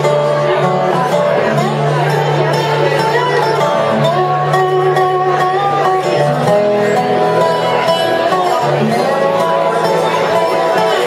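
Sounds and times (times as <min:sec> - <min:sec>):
resonator guitar picking: 0:00.0 - 0:11.0
sliding melody notes: 0:00.0 - 0:11.0
upright bass line: 0:00.0 - 0:11.0.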